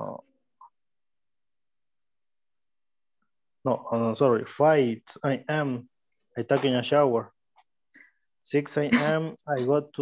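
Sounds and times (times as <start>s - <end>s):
man saying uh: 8.8s - 9.8s.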